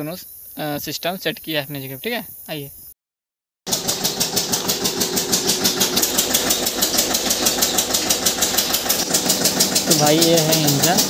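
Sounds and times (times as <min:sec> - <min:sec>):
diesel engine running: 0:03.7 - 0:11.0.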